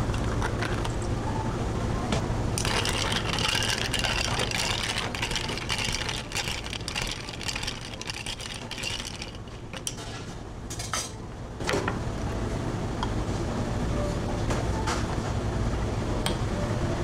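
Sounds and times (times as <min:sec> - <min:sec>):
spoon stirring drink: 0:00.0 - 0:01.1, 0:02.6 - 0:10.0
ice cubes clinking in glass: 0:02.6 - 0:10.0.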